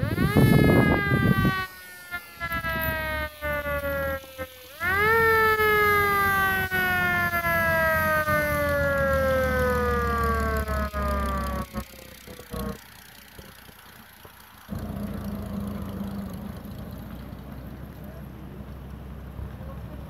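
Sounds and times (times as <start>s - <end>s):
fire engine siren wail: 0.0s - 18.5s
truck engine passing: 0.0s - 20.0s.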